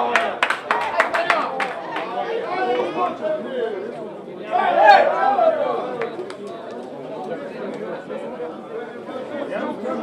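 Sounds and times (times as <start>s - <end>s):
people chatting: 0.0s - 10.0s.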